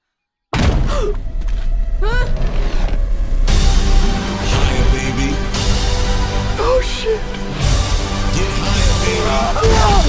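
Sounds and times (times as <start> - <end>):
heavy low rumbling music: 0.6 - 10.0.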